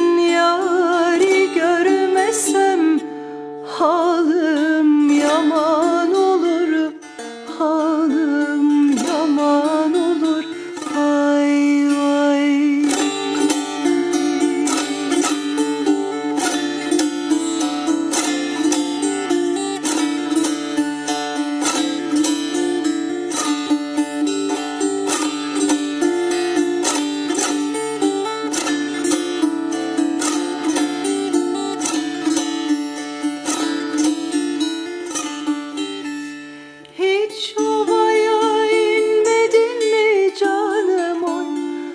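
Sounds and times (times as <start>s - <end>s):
woman singing: 0.0s - 20.4s, 36.9s - 41.9s
plucked lute: 0.0s - 41.9s.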